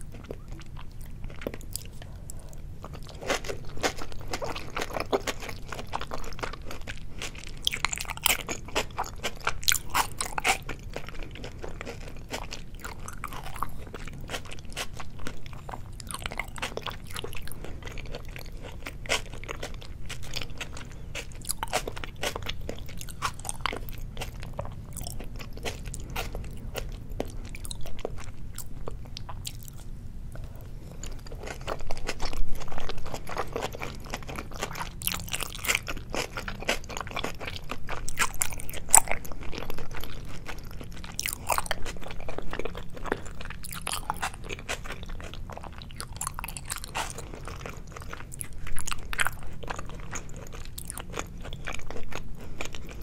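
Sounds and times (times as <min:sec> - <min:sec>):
wet chewing clicks and smacks: 0:00.0 - 0:53.0.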